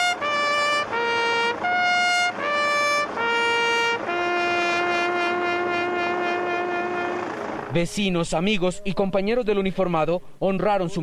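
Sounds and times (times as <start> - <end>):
trumpet holding low note: 0.0 - 7.6.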